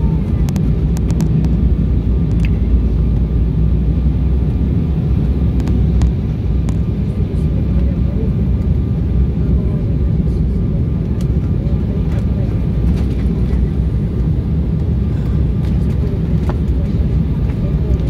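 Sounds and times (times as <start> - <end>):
airliner engines rumbling in cabin: 0.0 - 18.0.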